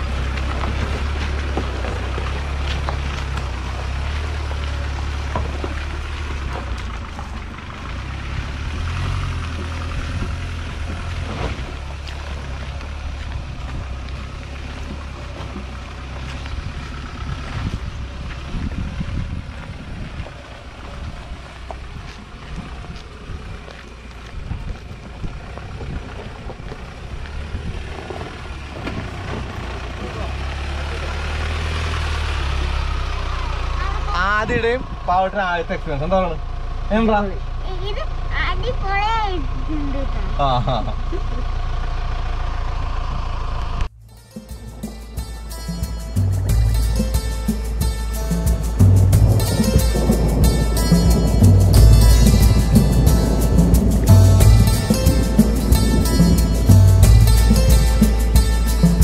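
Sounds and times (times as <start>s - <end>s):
diesel engine low rumble: 0.0s - 59.0s.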